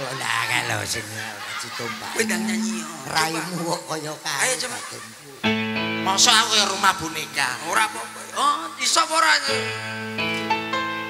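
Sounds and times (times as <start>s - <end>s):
amplified voices talking: 0.0s - 4.3s
held vocal note: 1.9s - 3.9s.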